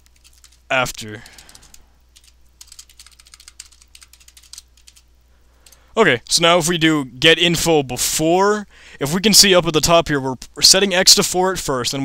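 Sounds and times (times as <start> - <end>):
keyboard typing: 0.0 - 5.8.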